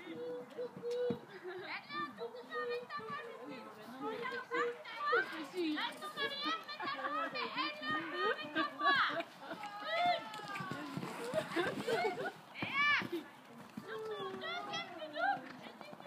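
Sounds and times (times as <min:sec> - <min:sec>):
young voices chattering: 0:00.0 - 0:16.0.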